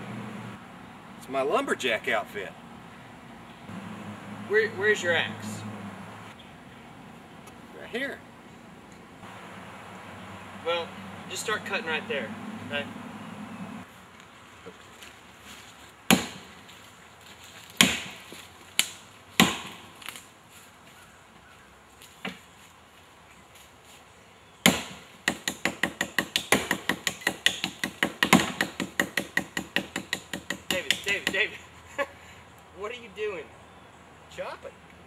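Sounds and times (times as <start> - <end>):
axe chopping log: 16.1 - 16.5, 17.8 - 18.2, 18.8 - 19.8, 24.6 - 31.5.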